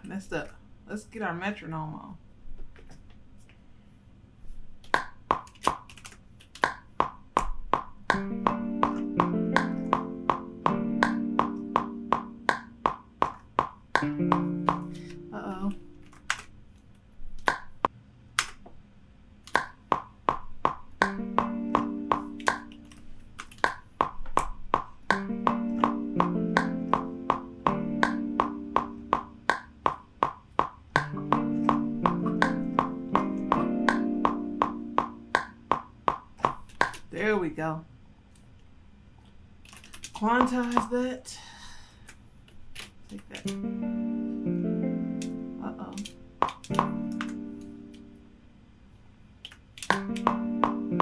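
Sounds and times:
metronome clicks: 7.4 - 16.4, 20.9 - 30.0, 30.6 - 35.8, 43.4 - 48.2, 49.8 - 51.0.

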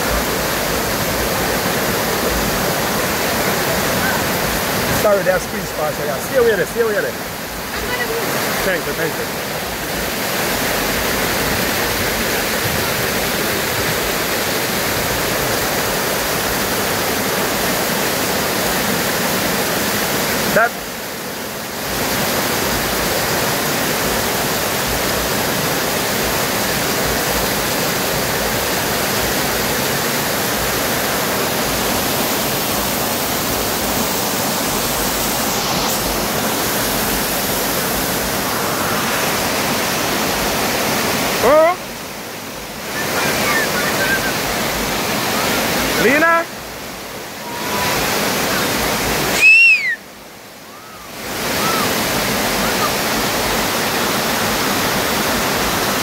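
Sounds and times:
waterfall rushing over rocks: 0.0 - 56.0.

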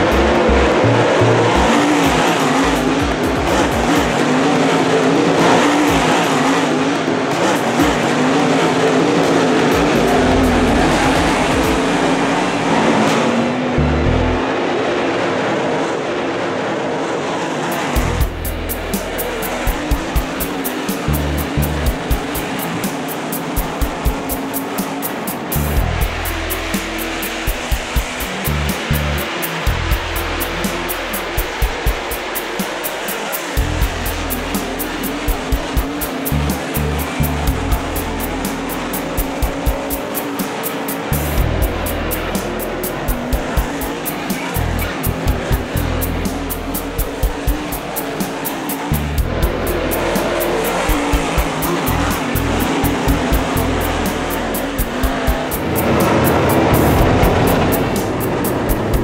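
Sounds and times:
background music with beat: 0.0 - 14.4, 17.7 - 59.0
race car engines: 0.0 - 59.0.

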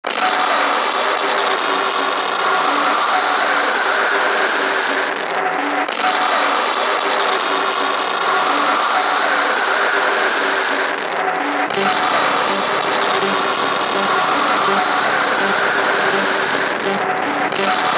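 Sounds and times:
noisy industrial synth texture: 0.1 - 17.9
short repeated synth notes: 11.3 - 17.9
rising synth sweep: 11.8 - 17.7.

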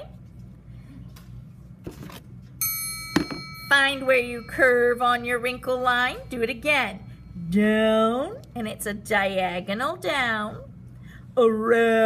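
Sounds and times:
room hum: 0.0 - 12.0
high ringing tone: 2.6 - 8.9.

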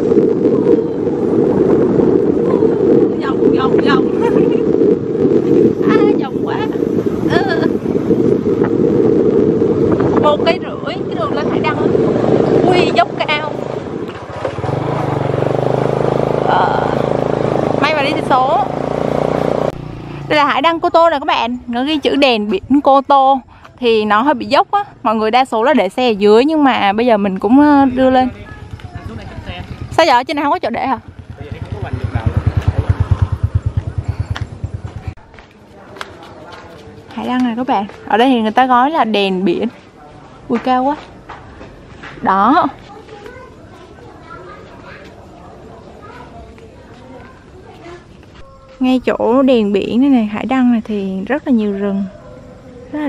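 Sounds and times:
wind rumbling on microphone: 0.0 - 53.0
motorbike engine climbing: 1.4 - 21.2, 26.7 - 39.1.

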